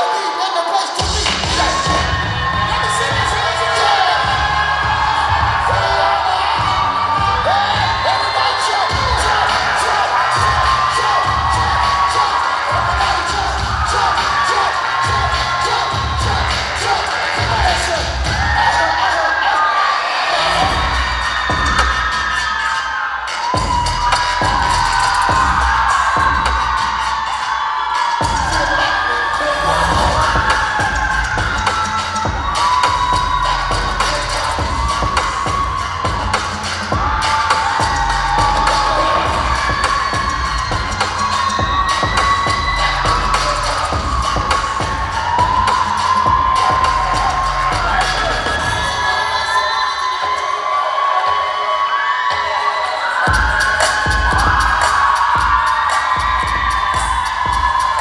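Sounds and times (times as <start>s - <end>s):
audience cheering and shouting: 0.0s - 58.0s
hip-hop dance music with heavy bass: 0.0s - 58.0s.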